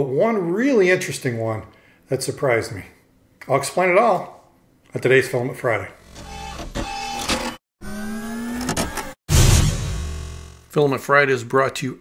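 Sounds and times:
machine-like whine rising in pitch: 7.8 - 10.7.

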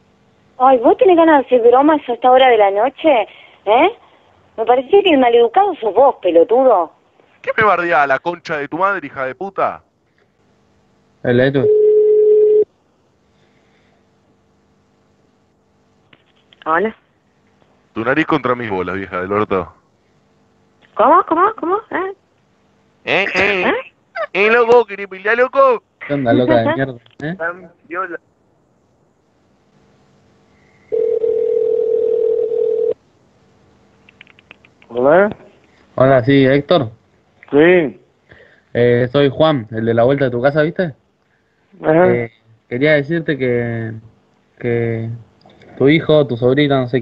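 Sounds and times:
faint hum: 0.0 - 47.0
telephone line tone: 11.6 - 12.7, 30.9 - 33.0
spoken syllable: 23.1 - 25.4, 26.1 - 26.9.

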